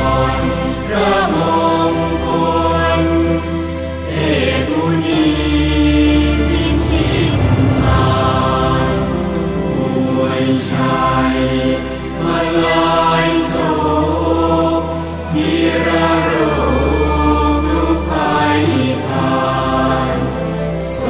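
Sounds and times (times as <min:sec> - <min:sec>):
voices chanting: 0:00.0 - 0:21.0.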